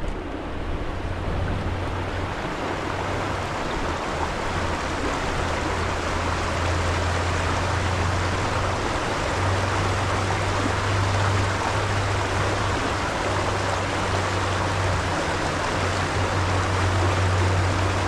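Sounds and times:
low hum: 0:00.0 - 0:18.0
water rushing over stones: 0:00.0 - 0:18.0.

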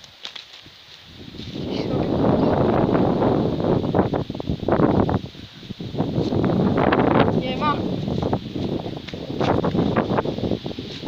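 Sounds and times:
wind buffeting microphone: 0:00.6 - 0:11.0.

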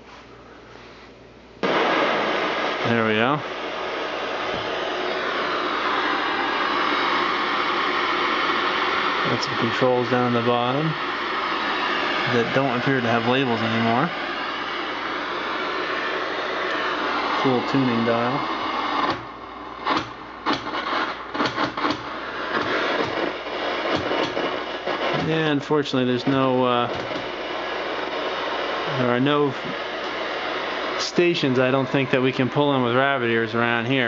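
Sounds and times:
loud tv static hiss: 0:01.6 - 0:34.0.

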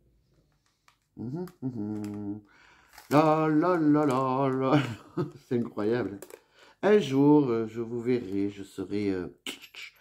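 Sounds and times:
woman humming: 0:01.2 - 0:02.4.

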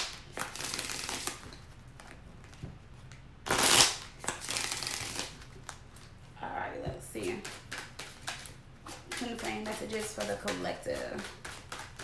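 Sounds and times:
cards being shuffled: 0:00.0 - 0:06.1, 0:07.3 - 0:12.0.

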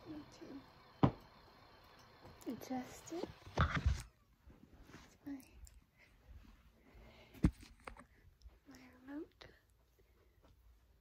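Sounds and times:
knock: 0:01.0 - 0:01.2.

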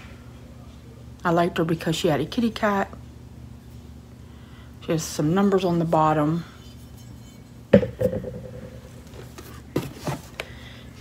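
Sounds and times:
figurine knocking on hard surface: 0:07.8 - 0:09.1.

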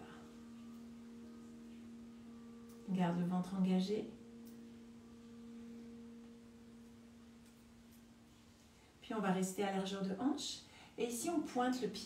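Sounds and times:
faint steady low tone: 0:00.0 - 0:12.0.

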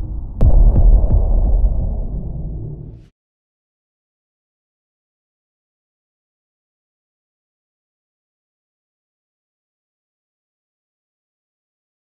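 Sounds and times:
deep booming rumble: 0:00.0 - 0:03.1
sharp hit: 0:00.0 - 0:03.1.

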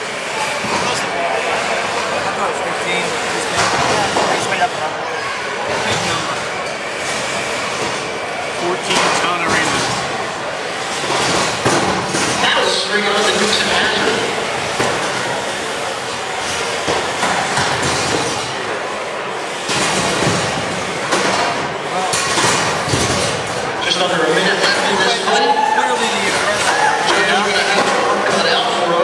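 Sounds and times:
chatter of voices: 0:00.0 - 0:29.0.

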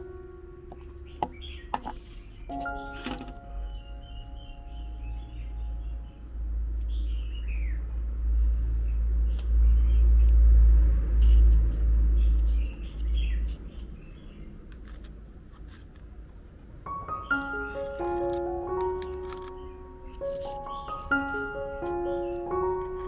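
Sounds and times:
small birds chirping: 0:00.7 - 0:10.4, 0:12.1 - 0:15.8, 0:16.9 - 0:23.0.

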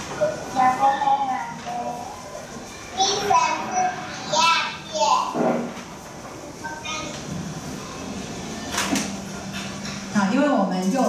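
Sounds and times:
young children chattering: 0:00.0 - 0:08.6.

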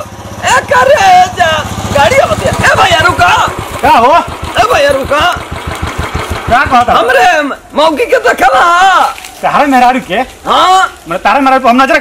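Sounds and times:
men's voices: 0:00.0 - 0:05.6, 0:06.3 - 0:12.0
motorcycle engine idling: 0:00.0 - 0:12.0.

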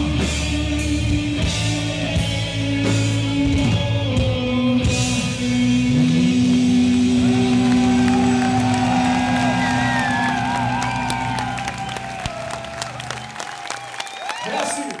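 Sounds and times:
crowd cheering: 0:06.4 - 0:15.0
crowd clapping: 0:06.7 - 0:15.0.

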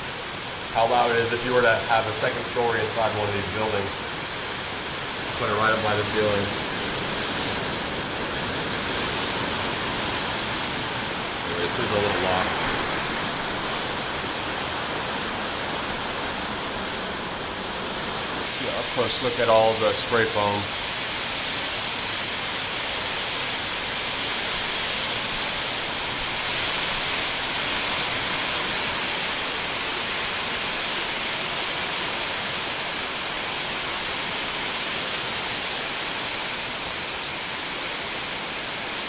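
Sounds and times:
rain on a metal roof: 0:00.0 - 0:39.0.

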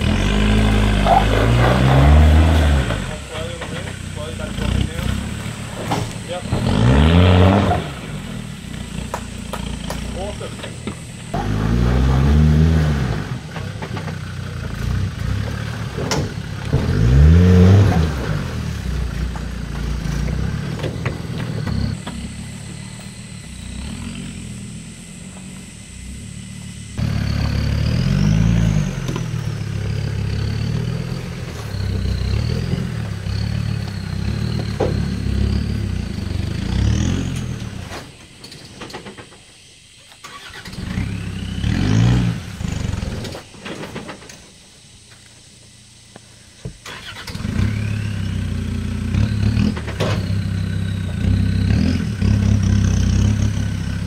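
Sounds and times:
diesel engine revving: 0:00.0 - 0:43.6, 0:44.8 - 0:54.0.

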